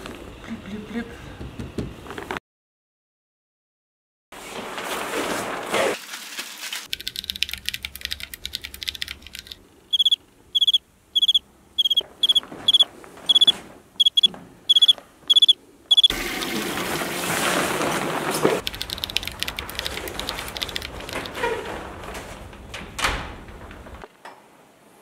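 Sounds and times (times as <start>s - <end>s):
crickets chirping: 7.1s - 16.1s, 18.6s - 21.5s
rushing noise: 18.6s - 22.4s.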